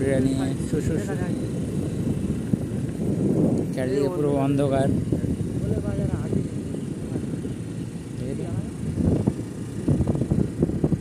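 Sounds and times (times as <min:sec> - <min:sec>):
vehicle rumble: 0:00.0 - 0:11.0.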